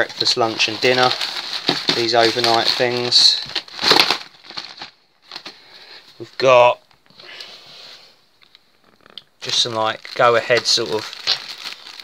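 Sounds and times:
nylon sack rustling: 0.0s - 4.9s
plastic packets crinkling: 0.0s - 6.5s, 9.2s - 12.0s.

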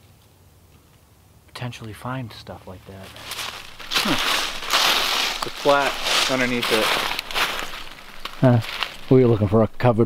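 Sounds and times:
dry leaves crunching underfoot: 2.9s - 9.5s.

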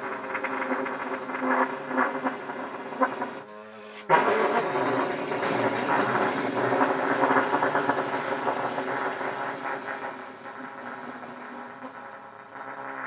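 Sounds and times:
massed trumpet notes: 0.0s - 9.4s.

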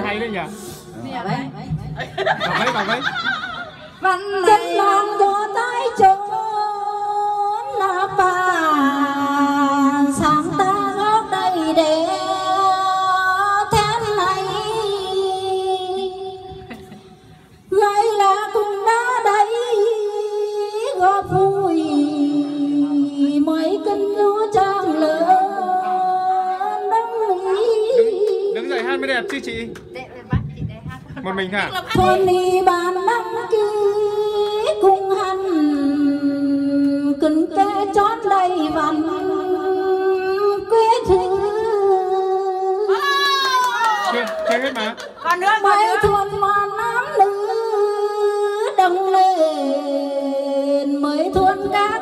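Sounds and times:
women singing unaccompanied: 4.0s - 16.7s, 17.7s - 28.6s, 31.9s - 43.0s, 45.4s - 52.0s.

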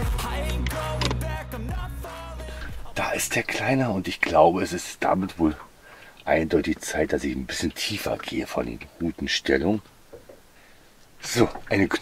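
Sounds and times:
background music with bass: 0.0s - 3.3s.

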